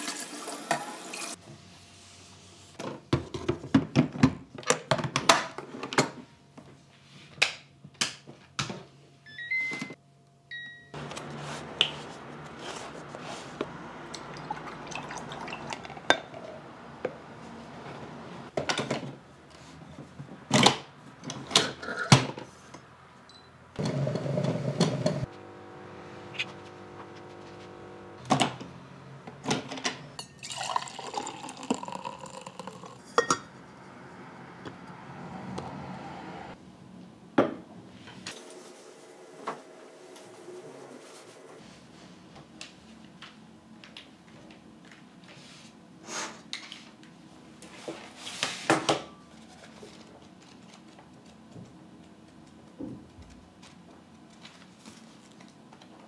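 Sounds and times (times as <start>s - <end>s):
coffee machine mechanical noise: 11.0s - 18.4s, 23.8s - 33.0s.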